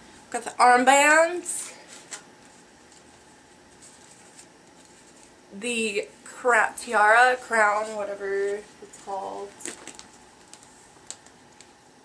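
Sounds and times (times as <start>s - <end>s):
faint rustling: 1.6s - 5.4s.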